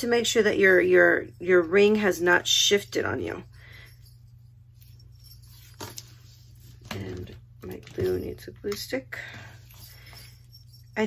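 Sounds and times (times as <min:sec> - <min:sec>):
low steady hum: 0:00.0 - 0:11.0
handling key ring tassel: 0:03.4 - 0:11.0.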